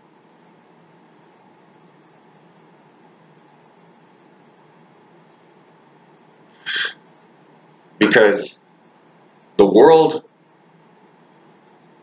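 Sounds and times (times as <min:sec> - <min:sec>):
faint room hiss: 0:00.0 - 0:12.0
man breathing sharply: 0:06.6 - 0:07.0.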